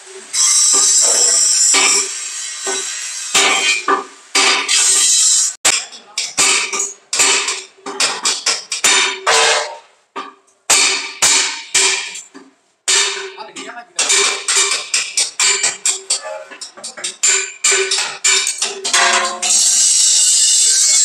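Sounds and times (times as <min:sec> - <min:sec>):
hammer striking sheet steel: 0:00.3 - 0:09.9, 0:10.7 - 0:21.0.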